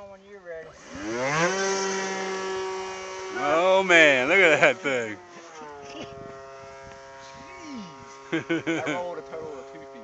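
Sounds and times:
model airplane motor buzzing: 0.2s - 10.0s.

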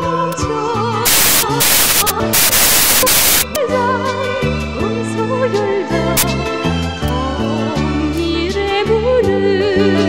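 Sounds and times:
loud static hiss: 1.1s - 3.6s
female vocal with orchestra: 3.6s - 6.2s, 7.1s - 10.0s.

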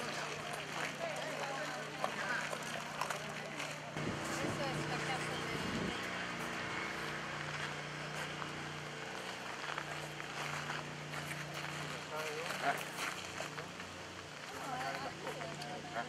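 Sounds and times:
indistinct voices talking: 0.0s - 16.0s
low motor hum: 0.0s - 16.0s.

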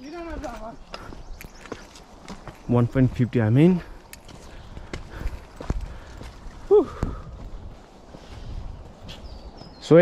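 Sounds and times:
footsteps on dirt and rock: 0.0s - 10.0s.

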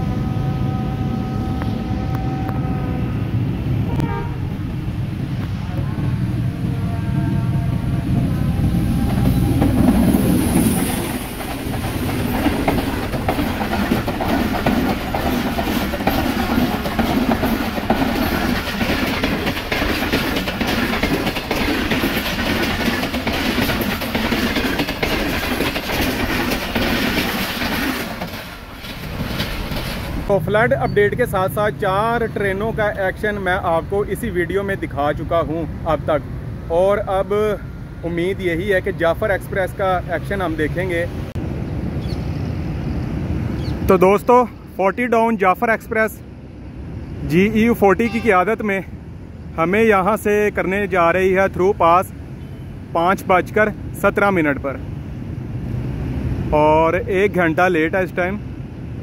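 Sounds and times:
train horn: 0.0s - 4.6s, 5.6s - 9.6s
train rumble and wheel clatter: 0.0s - 59.0s.

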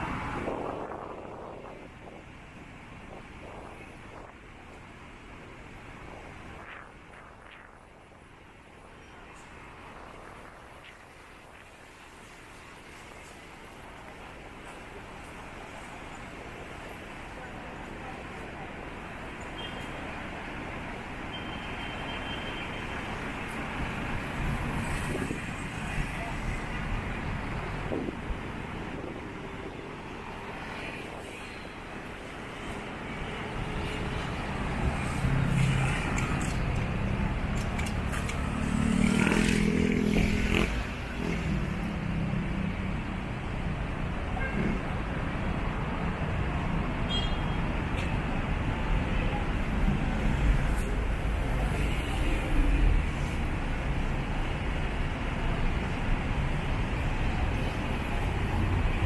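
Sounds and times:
cars and vans passing: 0.0s - 59.0s.

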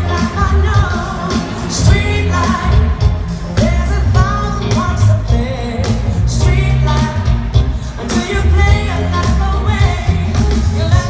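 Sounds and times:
heavy bass: 0.0s - 11.0s
woman singing lead: 0.0s - 11.0s.

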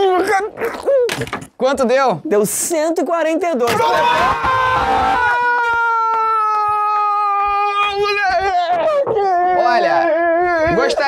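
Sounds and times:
person wailing: 4.1s - 11.0s.

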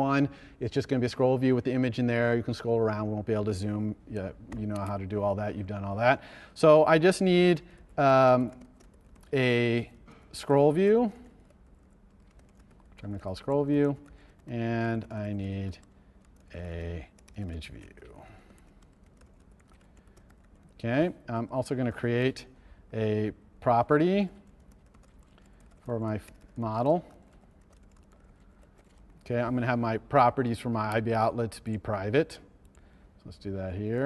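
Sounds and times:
faint keyboard typing: 0.9s - 34.0s.

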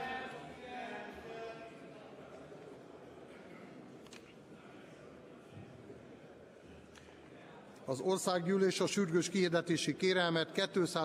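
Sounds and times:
murmur of many voices: 0.0s - 11.0s.

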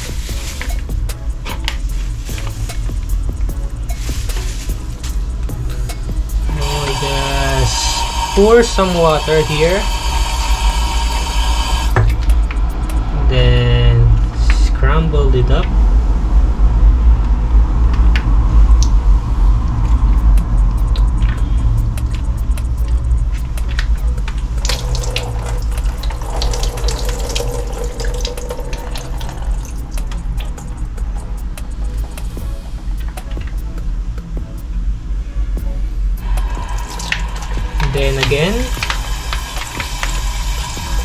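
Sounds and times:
tap water splashing into sink: 24.6s - 29.6s, 36.3s - 41.0s.

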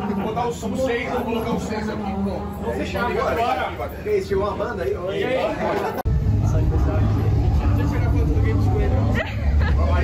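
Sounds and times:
background chatter: 0.0s - 10.0s
heavy low rumble: 6.1s - 10.0s.

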